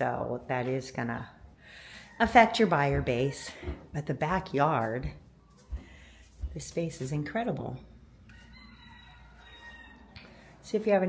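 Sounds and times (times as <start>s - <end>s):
rooster crowing faintly: 8.3s - 10.6s.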